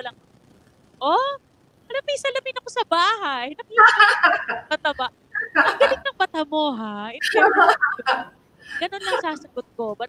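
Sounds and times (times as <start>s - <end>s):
woman speaking: 1.0s - 10.0s.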